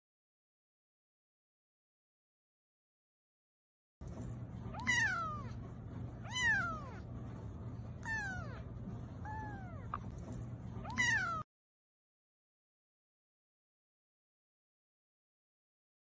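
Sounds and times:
kitten meowing: 0:04.7 - 0:05.6, 0:06.2 - 0:07.0, 0:08.0 - 0:08.6, 0:09.2 - 0:10.0, 0:10.8 - 0:11.4.

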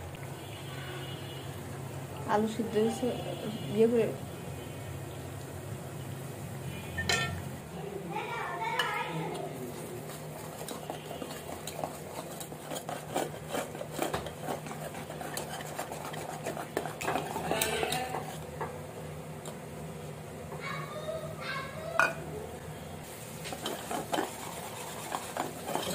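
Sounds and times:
whisk clicking against metal bowl: 0:08.8 - 0:18.5, 0:23.5 - 0:25.9.

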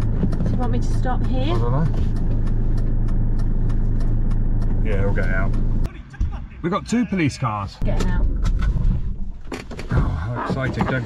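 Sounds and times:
diesel engine idling: 0:00.0 - 0:08.2
faint regular tick: 0:00.2 - 0:05.7.

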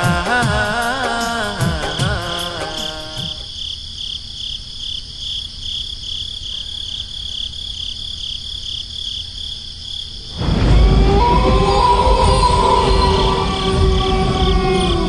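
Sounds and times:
song music: 0:00.0 - 0:03.5, 0:10.4 - 0:15.0
cricket chirping: 0:00.0 - 0:15.0.

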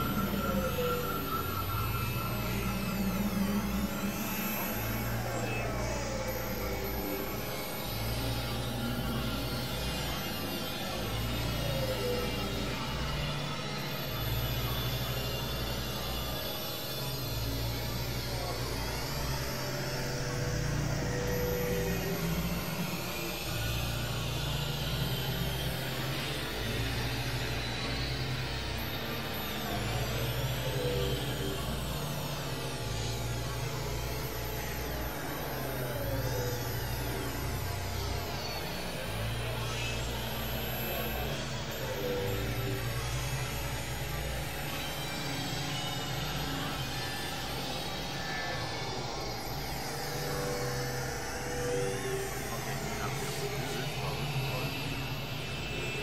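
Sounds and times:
layered sustained synth tones: 0:00.0 - 0:56.0.

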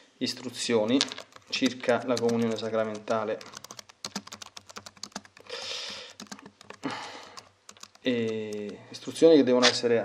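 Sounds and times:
rapid light clicks: 0:01.0 - 0:08.8.

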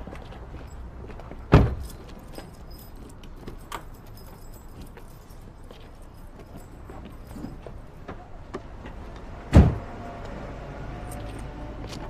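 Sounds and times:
car door slamming: 0:01.5 - 0:01.8, 0:09.5 - 0:09.9.

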